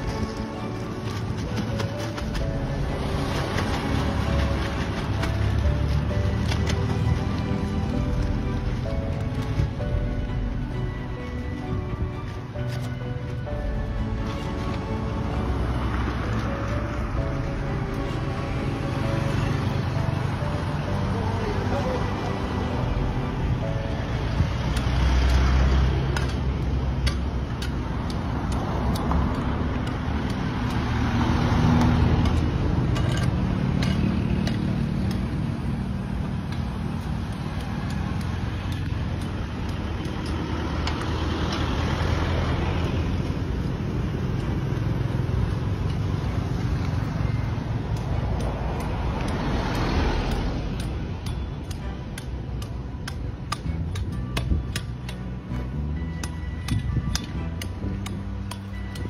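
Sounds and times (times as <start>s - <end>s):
vehicles passing: 0.0s - 59.0s.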